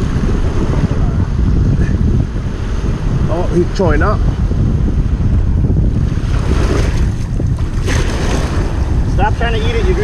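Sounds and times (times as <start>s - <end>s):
shallow surf washing: 0.0s - 10.0s
wind buffeting microphone: 0.0s - 10.0s.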